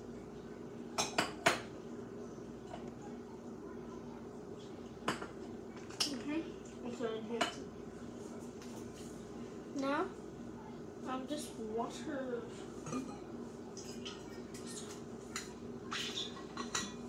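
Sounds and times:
dishes and utensils clinking: 0:12.8 - 0:15.6, 0:16.2 - 0:17.0.

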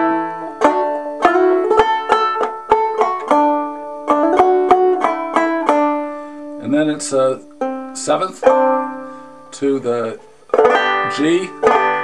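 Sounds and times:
banjo picked notes: 0:00.0 - 0:12.0.

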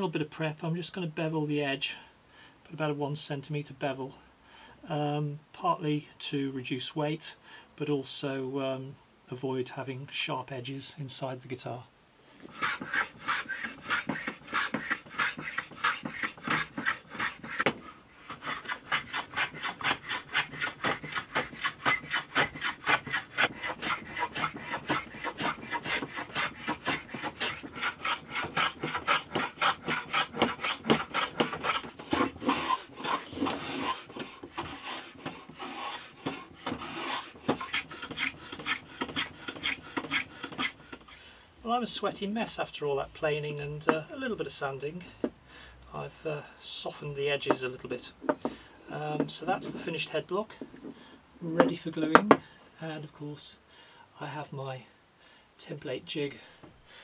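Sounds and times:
hand plane shaving wood: 0:12.4 - 0:41.2, 0:49.1 - 0:50.9.

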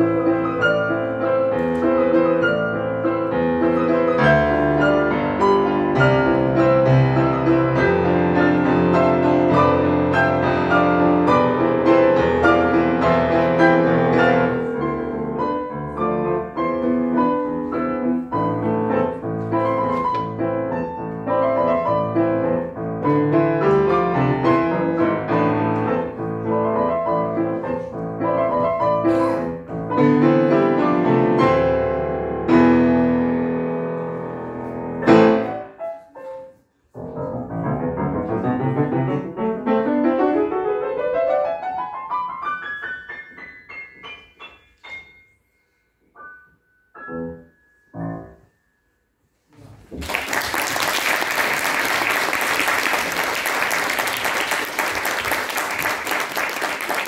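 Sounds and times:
grand piano waltz: 0:00.0 - 0:50.4.

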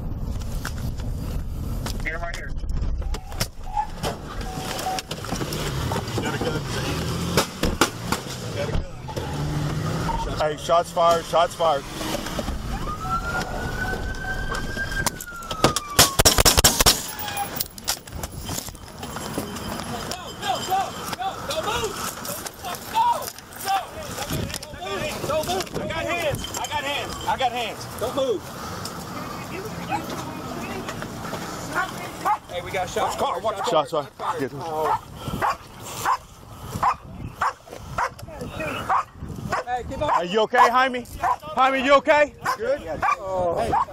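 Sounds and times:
car engine and road rumble: 0:00.0 - 0:43.9
siren wailing: 0:09.0 - 0:10.4, 0:11.8 - 0:17.6
shouted voices: 0:19.9 - 0:28.4.

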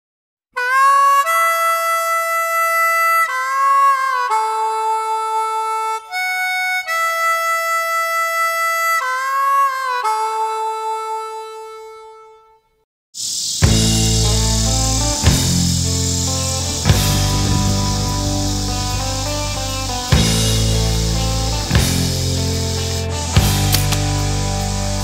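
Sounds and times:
harmonica melody: 0:00.6 - 0:12.8, 0:13.6 - 0:25.0.

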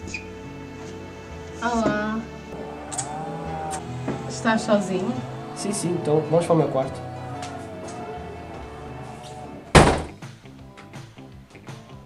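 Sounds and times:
background music: 0:00.0 - 0:12.0
door shutting thunk: 0:09.7 - 0:10.1.

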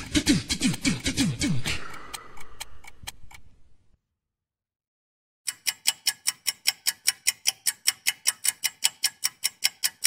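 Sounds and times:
clock-like ticking: 0:00.0 - 0:03.6, 0:05.5 - 0:10.0.

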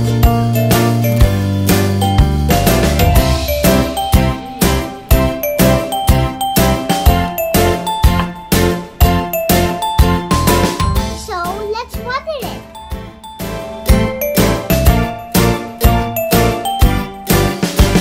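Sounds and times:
upbeat children's music: 0:00.0 - 0:18.0
child's voice gliding: 0:11.2 - 0:12.8.

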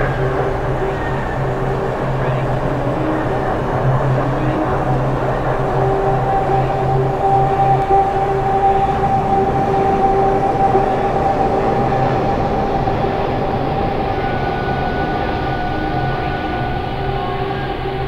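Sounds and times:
noisy electronic drone: 0:00.0 - 0:18.0.

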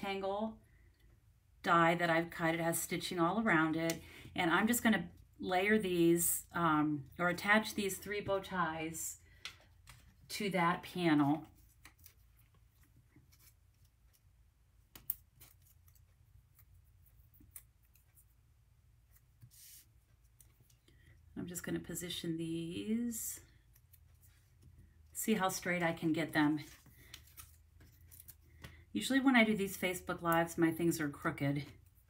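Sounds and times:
paper rustling: 0:11.2 - 0:14.3, 0:26.5 - 0:28.9.

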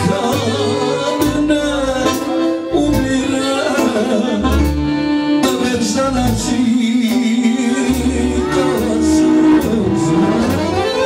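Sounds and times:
keyboard accompaniment: 0:00.0 - 0:11.0
singer holding long notes: 0:00.0 - 0:11.0.

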